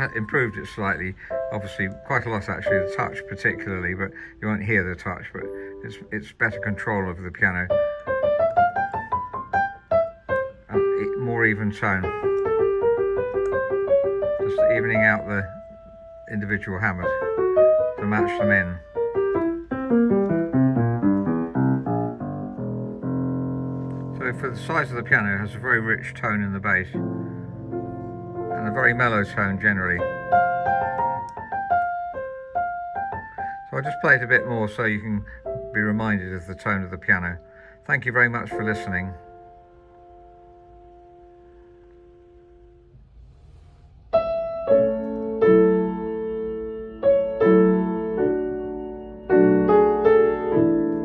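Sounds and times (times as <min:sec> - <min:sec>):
mellow piano chords: 0:00.0 - 0:51.0.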